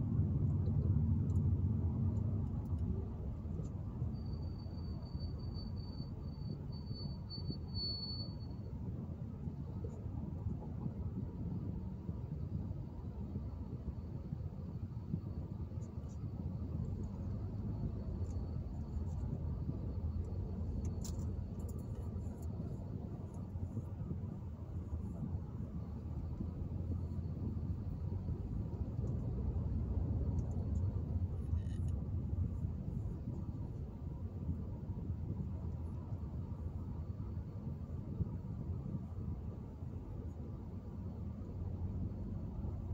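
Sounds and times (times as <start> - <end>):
car cabin road rumble: 0.0 - 6.7, 8.8 - 42.9.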